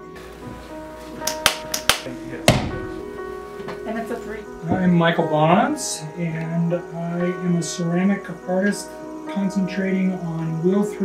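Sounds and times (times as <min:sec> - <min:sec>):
background music of held tones: 0:00.0 - 0:11.0
hands slapping wet clay: 0:01.2 - 0:02.1.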